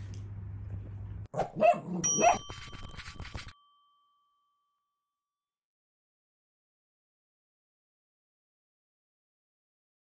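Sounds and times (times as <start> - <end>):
dog barking: 1.3 - 2.5
bright bell-like chime: 2.0 - 5.5.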